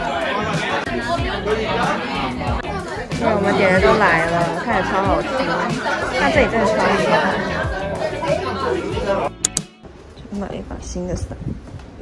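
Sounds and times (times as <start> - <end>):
restaurant chatter: 0.0 - 12.0.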